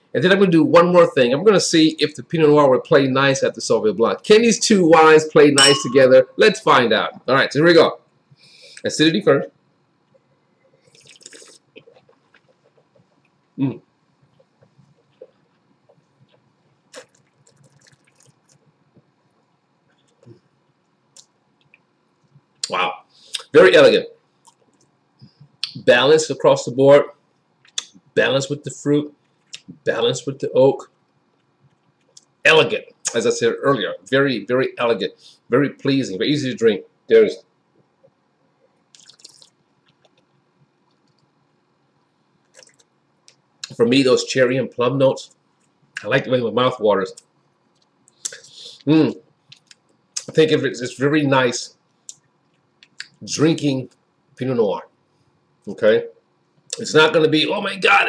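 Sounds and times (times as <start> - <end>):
sharp slurp: 10.8 - 12.6, 16.9 - 18.6, 38.9 - 40.0
wet mouth sounds: 10.8 - 13.2, 14.4 - 18.8, 38.9 - 41.1, 42.4 - 43.8, 47.8 - 48.6.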